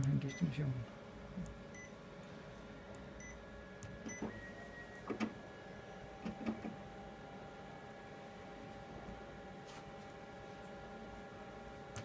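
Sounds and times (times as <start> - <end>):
copier running hum: 0.0 - 12.0
copier clicks and knocks: 5.1 - 5.4, 6.2 - 6.8.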